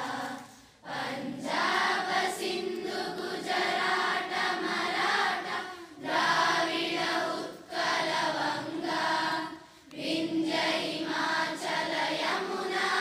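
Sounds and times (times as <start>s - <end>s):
group of voices singing in unison: 0.0s - 13.0s.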